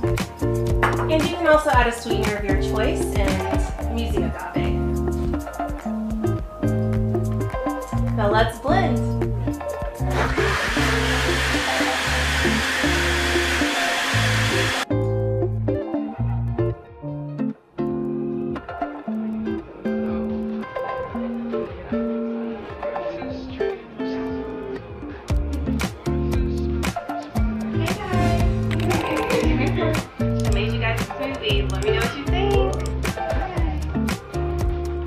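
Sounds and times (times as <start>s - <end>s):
background music: 0.0s - 35.0s
blender running: 10.1s - 14.8s.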